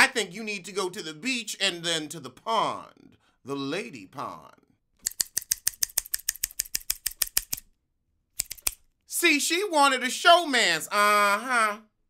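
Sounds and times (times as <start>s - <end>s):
rapid sharp clicks: 5.0s - 7.6s, 8.4s - 8.8s.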